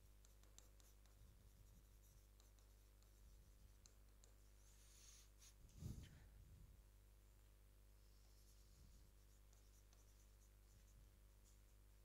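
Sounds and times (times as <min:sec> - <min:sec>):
steady low hum: 0:00.0 - 0:12.0
pen scratching on screen: 0:00.2 - 0:05.3, 0:09.2 - 0:11.0.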